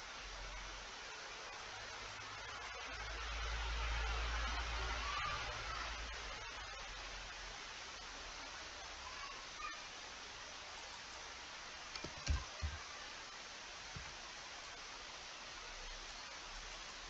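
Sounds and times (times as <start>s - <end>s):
faint background hiss: 0.0s - 17.0s.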